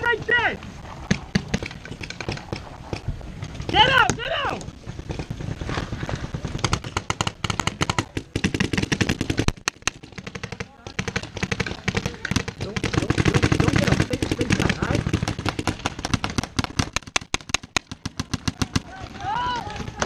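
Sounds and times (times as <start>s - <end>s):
paintball markers firing: 1.0s - 20.0s.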